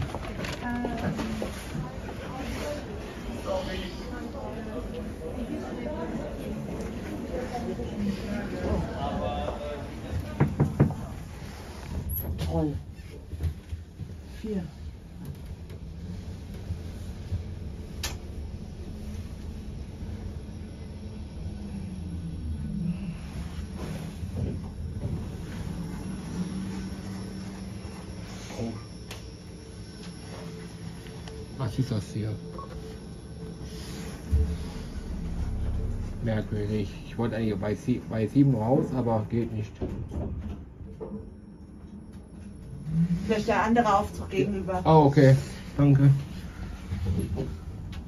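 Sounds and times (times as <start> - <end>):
elevator rumble and hum: 0.0 - 48.0.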